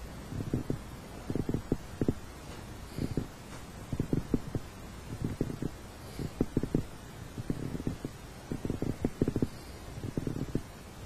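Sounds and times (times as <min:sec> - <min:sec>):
stomach gurgling: 0:00.3 - 0:02.2, 0:03.0 - 0:10.7.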